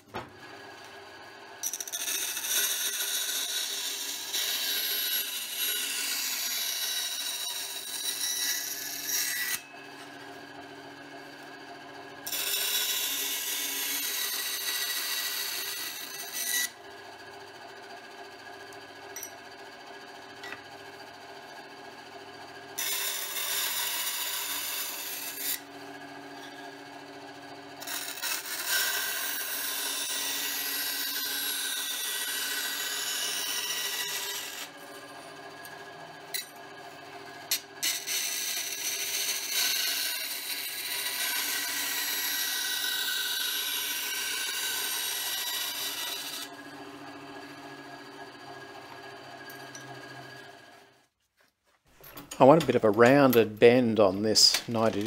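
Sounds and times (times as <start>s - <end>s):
saw motor hum: 0.0s - 51.1s
band saw cutting sheet metal: 1.5s - 16.9s, 22.7s - 26.8s, 27.5s - 48.4s.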